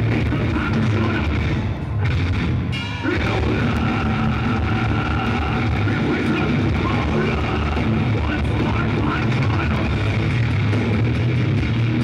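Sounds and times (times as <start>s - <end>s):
distorted guitar chord drone: 0.0s - 12.0s
heavy metal band playing live: 0.0s - 12.0s.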